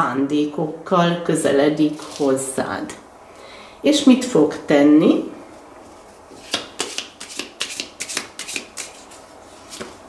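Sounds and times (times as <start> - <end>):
cards being shuffled: 6.3 - 10.0.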